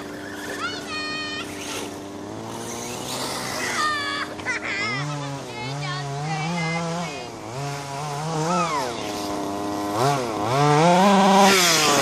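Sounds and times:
toy car motor humming: 0:00.0 - 0:12.0.

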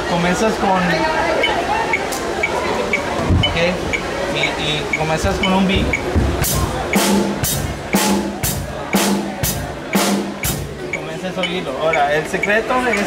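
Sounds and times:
metronome clicking: 0:01.4 - 0:06.1, 0:06.9 - 0:08.2, 0:09.9 - 0:13.0
drum kit steady beat: 0:04.9 - 0:11.0.

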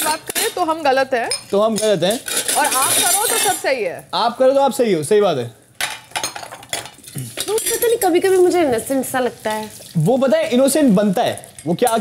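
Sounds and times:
dishes and cutlery clinking: 0:00.0 - 0:03.8, 0:05.8 - 0:08.6, 0:11.3 - 0:12.0.

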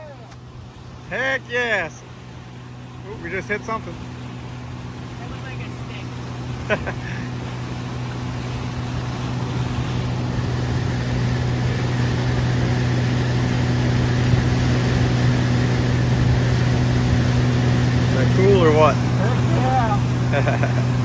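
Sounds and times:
outboard motor running: 0:00.0 - 0:21.0
water rushing from boat hull: 0:00.0 - 0:21.0.

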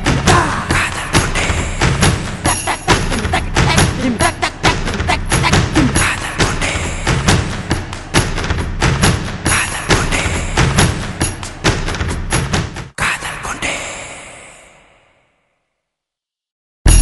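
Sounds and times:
music with fast percussive beat: 0:00.0 - 0:13.0.

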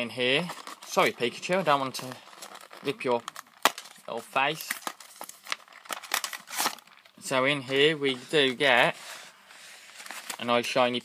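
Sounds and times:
packaging crinkling and ripping: 0:00.2 - 0:07.3, 0:09.8 - 0:10.6.

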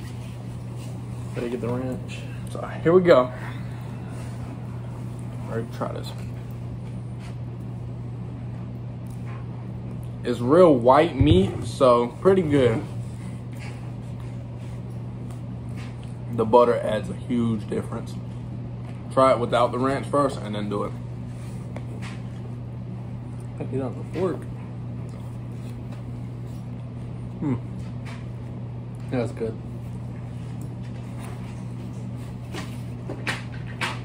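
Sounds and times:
low room hum: 0:00.0 - 0:34.0
man humming approval: 0:27.4 - 0:27.7.

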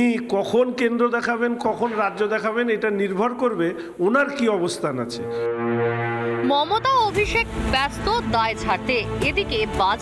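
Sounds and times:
low horn-like tone: 0:05.1 - 0:07.0.

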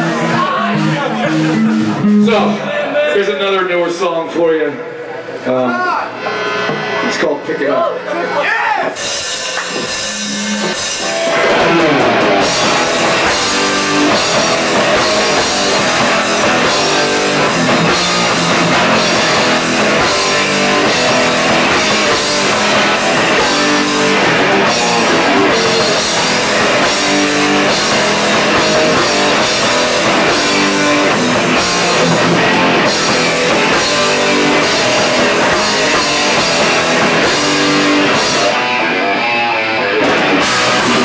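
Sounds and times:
drum kit: 0:00.0 - 0:02.7, 0:08.8 - 0:41.0
electric guitar: 0:00.0 - 0:03.0, 0:04.8 - 0:41.0
bass: 0:00.0 - 0:03.2, 0:09.0 - 0:41.0.

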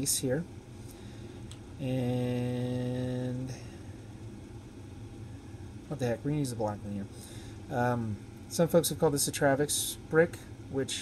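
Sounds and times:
man speaking: 0:00.0 - 0:00.5, 0:01.8 - 0:03.7, 0:05.9 - 0:07.1, 0:07.7 - 0:11.0
room noise hum: 0:00.0 - 0:11.0.

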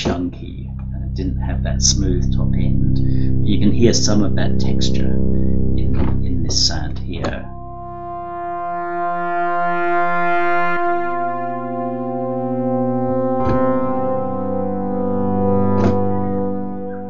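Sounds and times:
synthesizer pad chords: 0:00.0 - 0:17.0.

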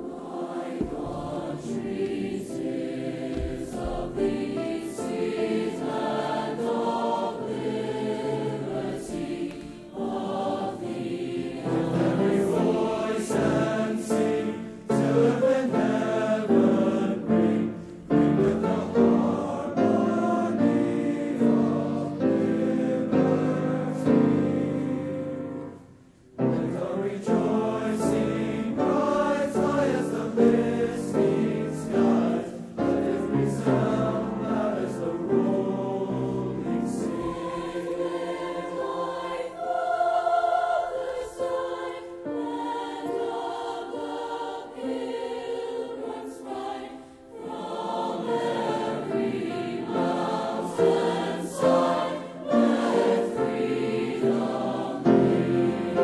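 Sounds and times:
choir singing in harmony: 0:00.0 - 0:56.0.

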